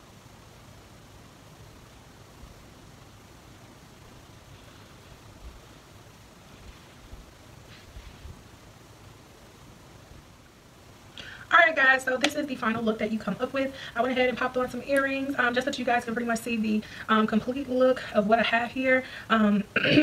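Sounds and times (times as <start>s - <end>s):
faint hiss: 0.0s - 20.0s.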